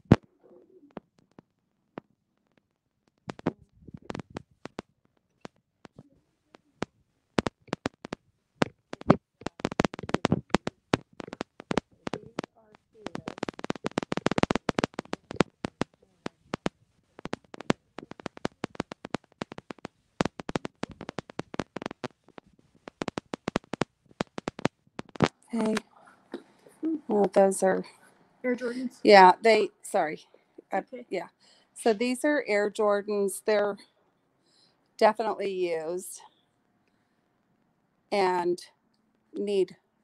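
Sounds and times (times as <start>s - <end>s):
choppy broken-up clicks: 0.0s - 28.0s.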